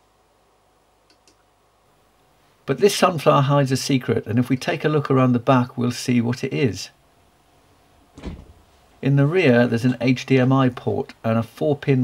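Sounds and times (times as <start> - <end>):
soft low thump: 8.1 - 8.7.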